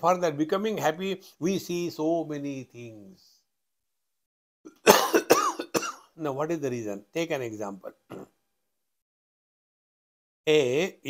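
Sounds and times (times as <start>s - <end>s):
man coughing into hand: 4.7s - 6.2s, 8.1s - 8.4s.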